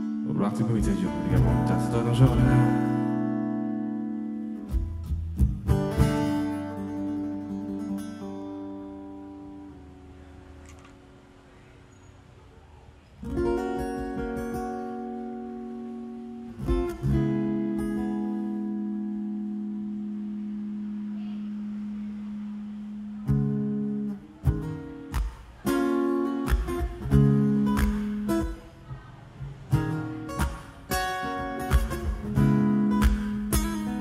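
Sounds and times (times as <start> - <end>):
acoustic guitar chords: 0.0 - 11.5, 13.2 - 34.0.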